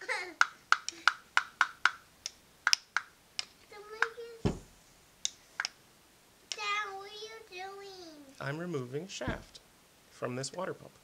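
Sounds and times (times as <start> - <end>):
dull thump: 4.4 - 4.8, 9.2 - 9.6.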